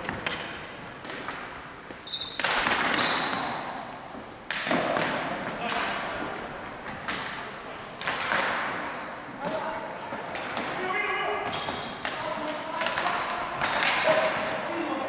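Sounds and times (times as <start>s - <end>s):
hockey sticks clacking on ball: 0.0s - 14.7s
shoe squeaks on gym floor: 2.0s - 3.9s, 11.4s - 12.0s, 13.4s - 14.6s.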